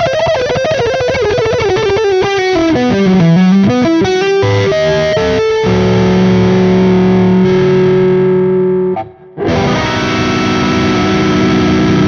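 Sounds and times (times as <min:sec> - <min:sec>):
distorted electric guitar: 0:00.0 - 0:12.0.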